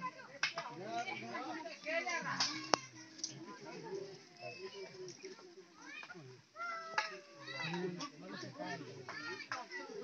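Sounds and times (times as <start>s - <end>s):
faint voices shouting: 1.0s - 10.0s.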